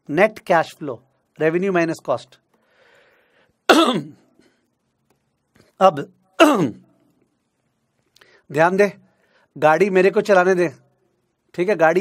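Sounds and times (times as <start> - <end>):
man coughing: 3.7 - 4.2, 6.4 - 6.8.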